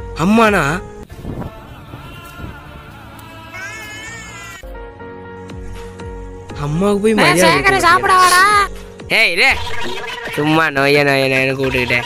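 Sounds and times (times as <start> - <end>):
cat meow sound effect: 3.6 - 4.6
background music with low beat: 4.6 - 10.5.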